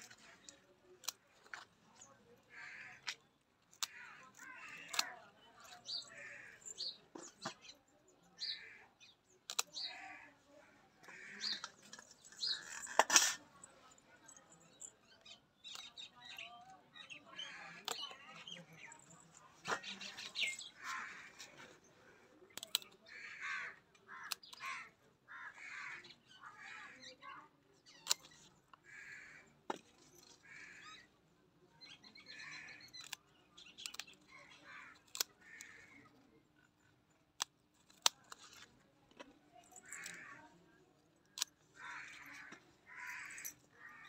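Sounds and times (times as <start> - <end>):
birds calling: 11.0 - 13.4, 14.6 - 21.8.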